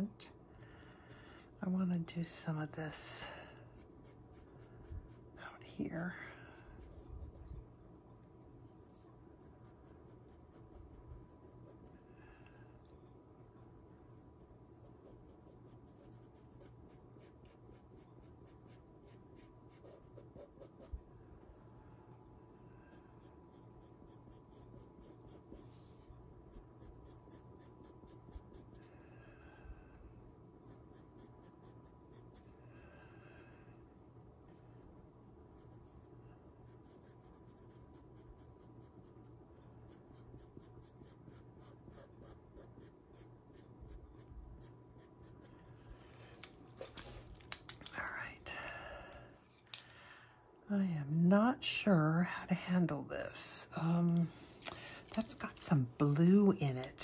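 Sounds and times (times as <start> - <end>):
pencil scratching on paper: 3.4 - 7.7, 9.3 - 12.0, 14.8 - 21.0, 22.9 - 28.9, 30.6 - 32.5, 35.5 - 45.6.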